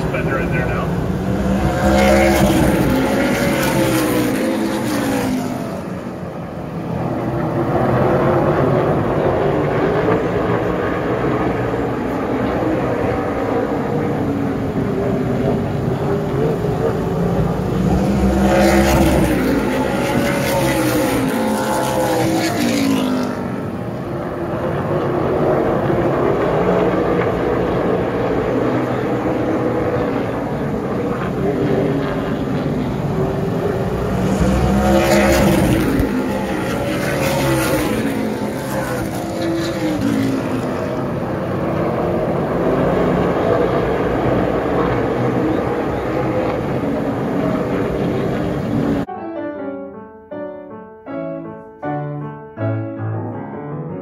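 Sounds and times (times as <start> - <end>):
race car engines passing: 0.0 - 49.1.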